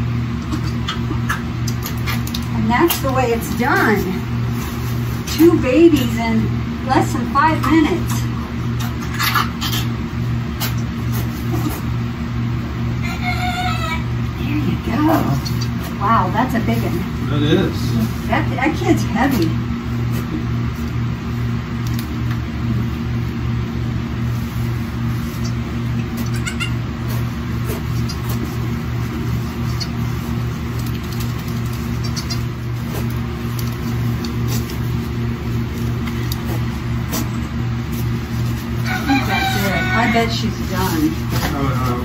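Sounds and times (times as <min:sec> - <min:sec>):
low pulsing hum: 0:00.0 - 0:42.0.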